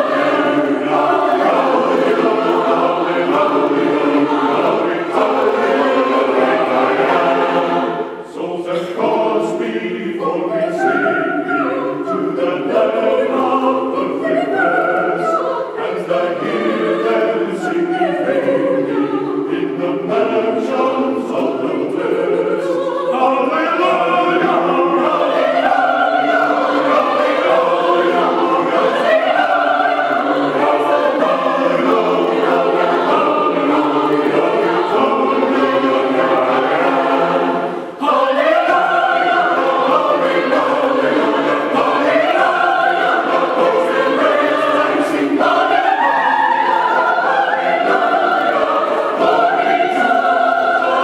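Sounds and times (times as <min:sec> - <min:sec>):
choir singing a hymn: 0:00.0 - 0:51.0.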